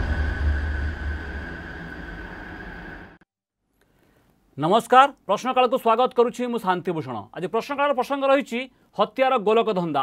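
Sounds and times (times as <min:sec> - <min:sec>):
cinematic hit: 0:00.0 - 0:03.2
low rumble: 0:00.0 - 0:03.2
steady high tone: 0:00.0 - 0:03.2.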